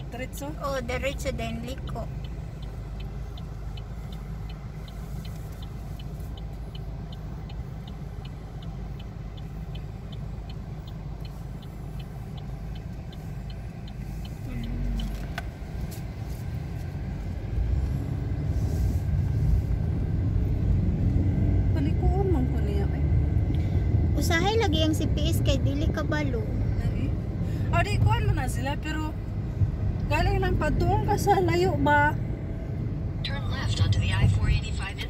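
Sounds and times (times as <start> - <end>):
car engine idling: 0.0 - 35.0
road noise: 0.0 - 35.0
turn signal ticking: 0.0 - 35.0.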